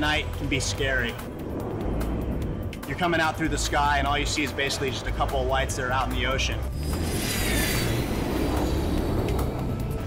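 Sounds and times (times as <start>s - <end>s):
jet engine rush with falling whine: 0.3s - 5.8s, 6.6s - 10.0s.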